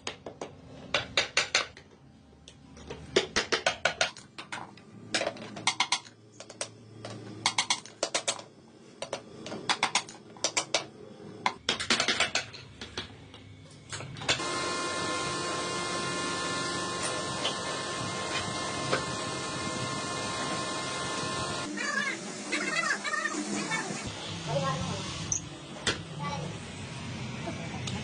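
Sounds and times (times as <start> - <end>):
electric wood lathe whining: 14.4 - 21.7.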